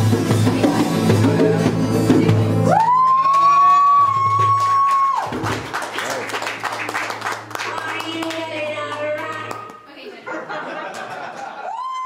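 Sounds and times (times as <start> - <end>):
scattered applause: 2.7 - 9.8.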